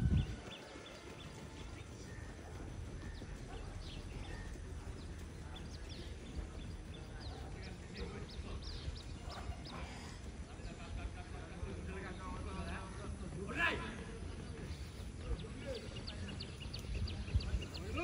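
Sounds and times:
outdoor background noise: 0.0s - 18.0s
runners' footfalls on dirt path: 0.0s - 18.0s.

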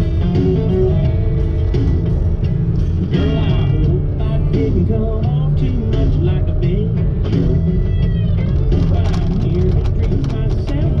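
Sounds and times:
guitar: 0.0s - 11.0s.

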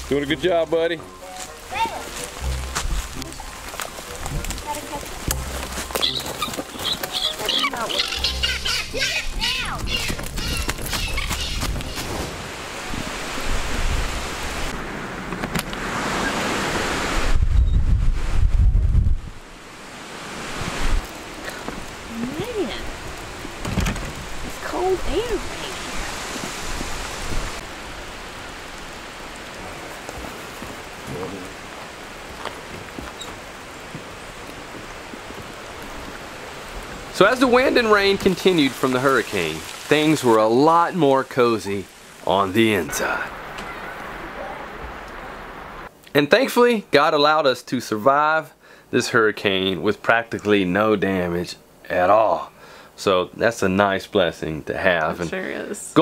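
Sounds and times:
rain: 0.0s - 56.0s
high calls: 1.0s - 12.1s, 41.4s - 45.8s
low rumble of wind: 1.6s - 6.5s, 8.2s - 39.9s
howling wind: 9.3s - 38.2s.

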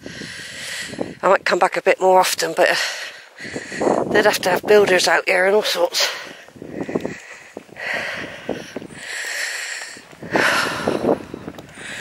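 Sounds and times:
person breathing close to microphone: 0.0s - 1.2s, 2.7s - 4.2s, 6.0s - 12.0s
footsteps on pavement: 2.4s - 12.0s.

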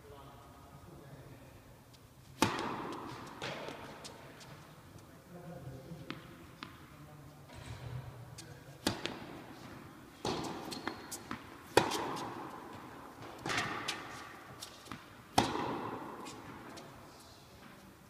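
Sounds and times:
rackets hitting tennis ball: 2.3s - 4.6s, 8.8s - 17.0s
tennis ball bouncing: 2.4s - 4.6s, 6.1s - 6.8s, 8.8s - 16.9s.

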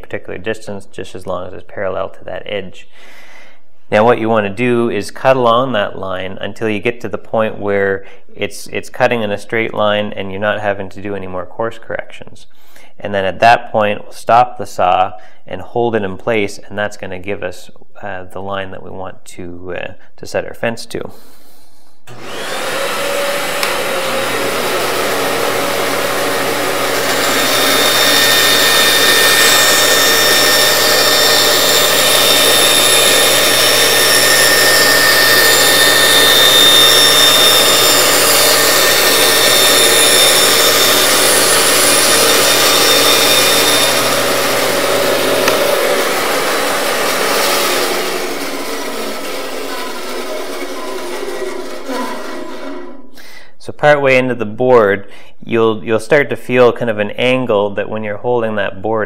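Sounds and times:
bandsaw motor hum: 22.1s - 53.1s
bandsaw cutting wood: 22.1s - 53.3s.

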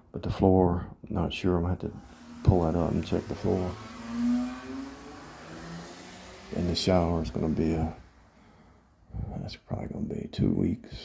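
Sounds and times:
man's drawn-out hesitation sound: 1.6s - 4.1s.

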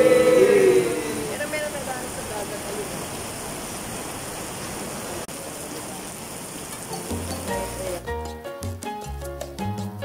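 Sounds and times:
heavy rain falling: 0.0s - 8.8s.

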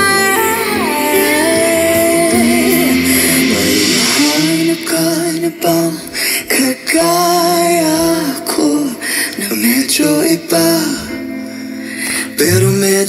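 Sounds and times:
band accompaniment: 0.0s - 6.8s
man and woman singing: 0.0s - 11.3s, 12.4s - 13.0s.

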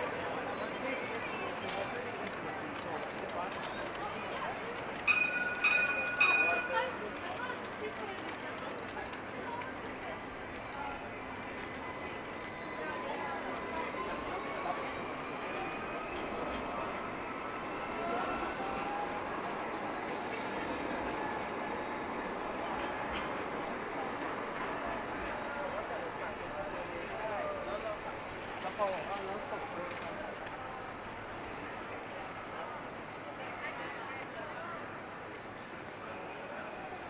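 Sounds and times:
indistinct chatter of passers-by: 0.0s - 37.0s
street traffic noise: 0.0s - 37.0s.

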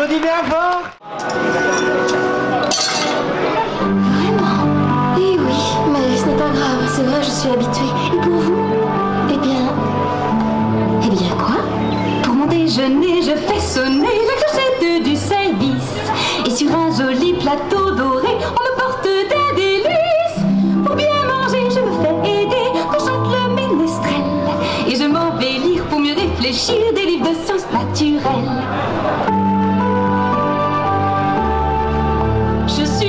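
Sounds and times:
instrumental accompaniment: 1.1s - 13.6s, 29.0s - 33.0s
bright chime-like clink: 1.6s - 3.3s
woman singing: 4.1s - 9.8s, 11.1s - 28.7s, 32.7s - 33.0s.

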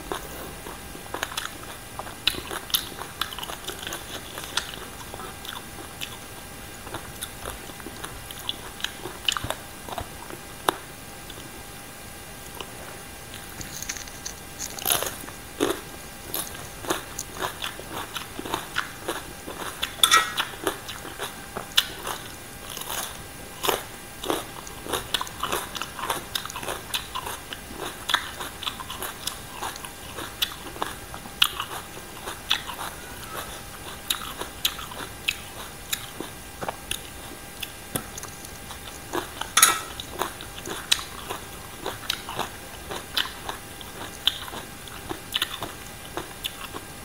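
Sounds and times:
crunchy chewing: 0.0s - 47.0s.

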